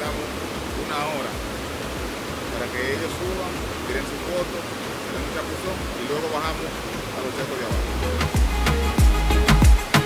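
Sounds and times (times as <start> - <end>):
river water over rocks: 0.0 - 10.0
man speaking: 2.5 - 7.8.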